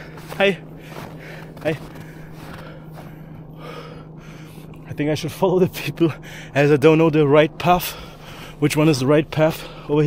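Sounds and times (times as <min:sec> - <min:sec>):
man breathing close to microphone: 0:00.0 - 0:04.9, 0:06.2 - 0:06.6, 0:07.8 - 0:08.6, 0:09.5 - 0:10.0
steady low hum: 0:00.0 - 0:10.0.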